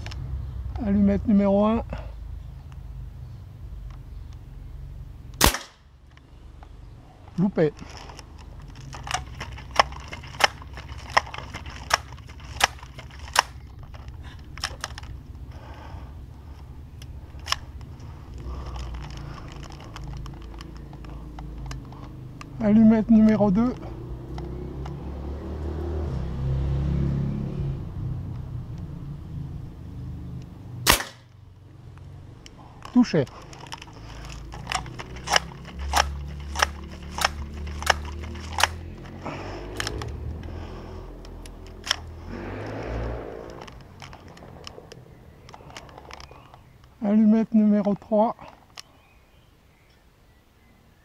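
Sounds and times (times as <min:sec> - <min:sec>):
air rifle shot: 0:05.4 - 0:05.8, 0:30.8 - 0:31.3
low rumbling noise: 0:32.5 - 0:47.0.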